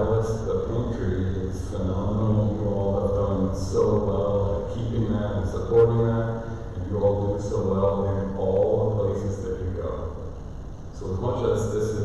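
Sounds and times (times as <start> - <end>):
man preaching: 0.0 - 10.2, 11.0 - 12.0.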